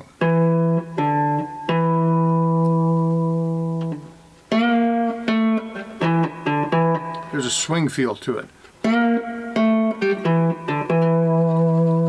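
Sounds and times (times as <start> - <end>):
slide guitar blues lick: 0.1 - 7.8, 8.8 - 12.0.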